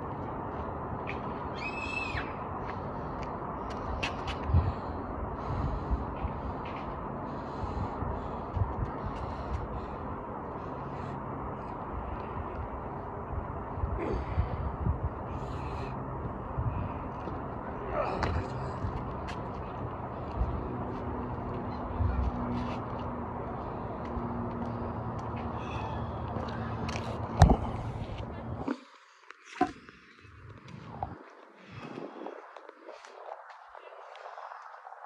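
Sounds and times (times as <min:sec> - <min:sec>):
outdoor background rumble: 0:00.0 - 0:35.0.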